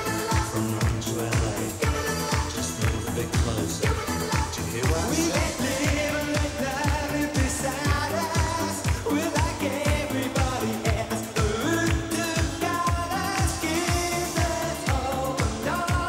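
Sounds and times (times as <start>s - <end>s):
kick drum: 0.0s - 16.0s
man singing: 0.0s - 16.0s
synth-pop dance music: 0.0s - 16.0s.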